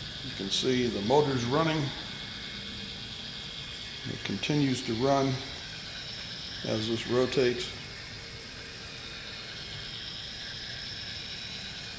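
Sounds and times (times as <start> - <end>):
small motor running: 0.0 - 11.9.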